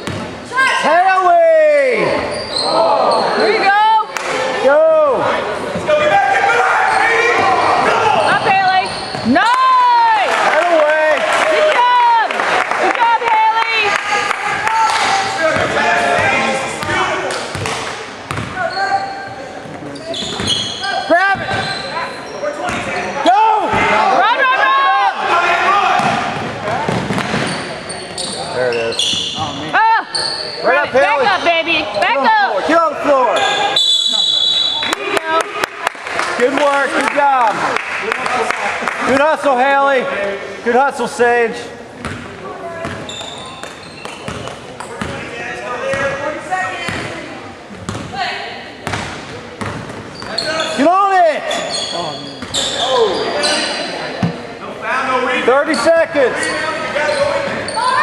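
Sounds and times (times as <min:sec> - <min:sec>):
spectators' voices: 0:00.0 - 0:58.0
sneakers squeaking on hardwood floor: 0:02.2 - 0:03.6, 0:06.8 - 0:09.5, 0:15.4 - 0:23.9, 0:26.0 - 0:32.2, 0:42.0 - 0:45.3, 0:48.8 - 0:54.5, 0:55.7 - 0:58.0
basketball bouncing: 0:16.8 - 0:18.6, 0:42.0 - 0:45.2, 0:47.9 - 0:48.1, 0:48.8 - 0:50.0
referee's whistle: 0:33.4 - 0:35.0.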